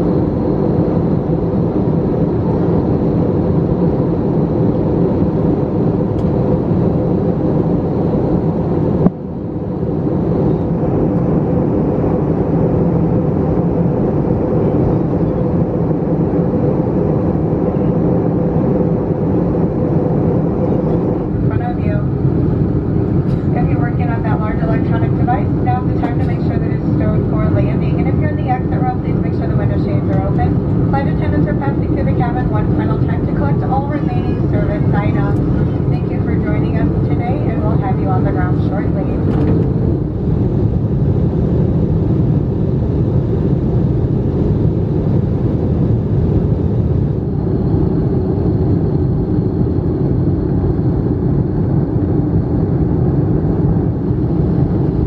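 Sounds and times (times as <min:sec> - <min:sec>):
aircraft engines and airflow drone: 0:00.0 - 0:55.0
person talking: 0:23.5 - 0:39.2.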